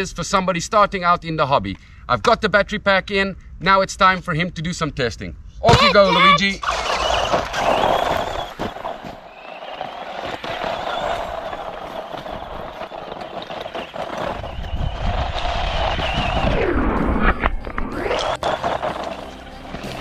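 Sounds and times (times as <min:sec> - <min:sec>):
rc car electric motor whining: 0:06.6 - 0:08.9.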